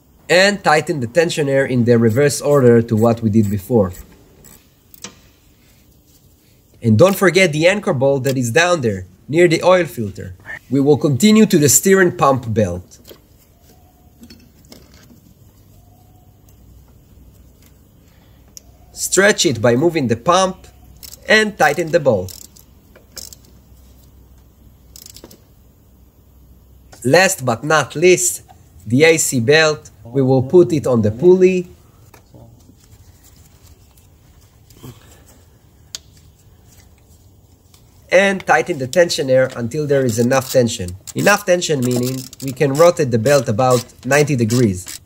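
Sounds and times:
rubber belt squeak: 40.0 - 45.0.

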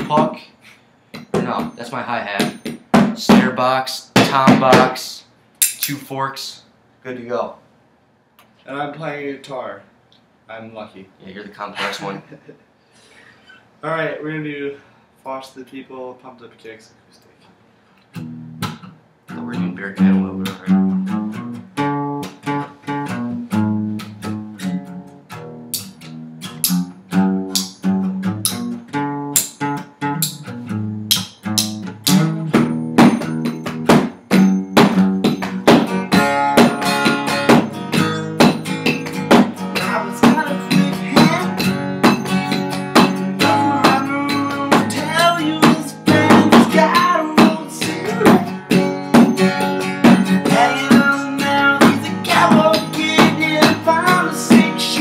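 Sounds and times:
acoustic guitar strumming: 1.2 - 5.1, 18.1 - 55.0
forks drumming on cardboard boxes: 4.2 - 5.0.

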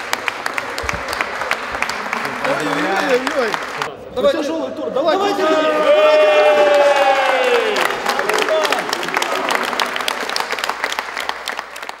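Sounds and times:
group of people applauding: 0.0 - 3.9, 6.3 - 12.0.

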